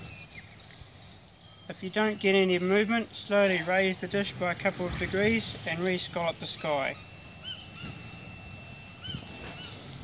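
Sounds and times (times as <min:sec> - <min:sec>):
bird chirping: 0:00.0 - 0:10.0
outdoor background noise: 0:00.0 - 0:10.0
steady high-pitched tone: 0:00.0 - 0:10.0.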